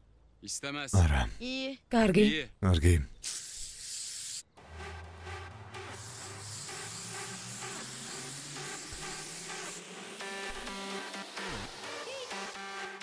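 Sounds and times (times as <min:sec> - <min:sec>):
hose nozzle spraying water: 0:03.2 - 0:04.5
background music: 0:04.6 - 0:13.0.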